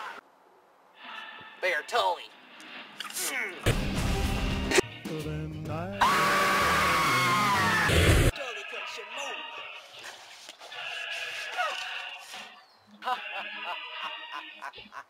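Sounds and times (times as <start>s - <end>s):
background music: 3.6s - 9.9s
boy screaming: 6.0s - 7.9s.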